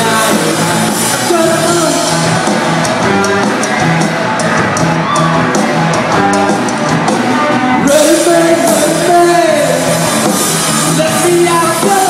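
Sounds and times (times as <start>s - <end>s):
drum kit with cymbal hits: 0.0s - 12.0s
electric guitars: 0.0s - 12.0s.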